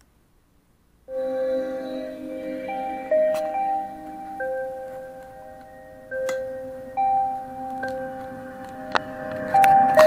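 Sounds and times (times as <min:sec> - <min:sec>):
chiming bell-like melody: 0:01.1 - 0:10.0.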